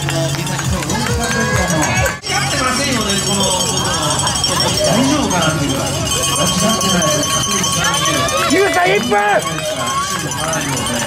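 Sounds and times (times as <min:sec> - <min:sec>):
people calling out: 0:01.0 - 0:11.0.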